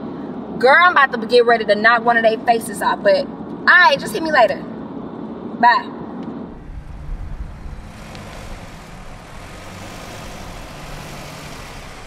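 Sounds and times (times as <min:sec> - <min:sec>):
road noise: 0:00.0 - 0:12.0
car engine running: 0:06.3 - 0:12.0.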